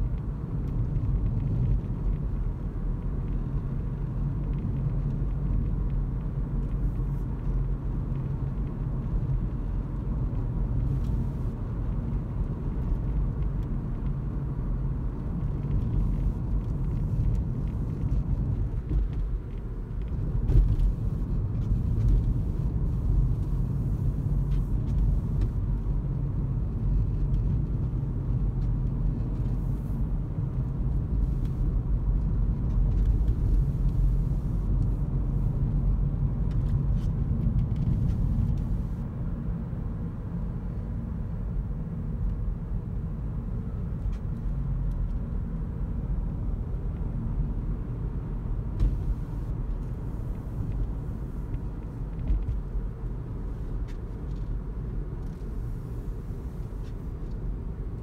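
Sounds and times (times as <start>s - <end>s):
tyre and road noise in car: 0.0s - 58.0s.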